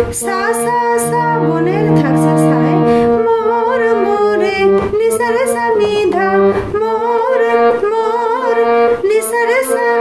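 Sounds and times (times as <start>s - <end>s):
harmonium playing slow melody: 0.0s - 10.0s
woman singing: 0.0s - 10.0s.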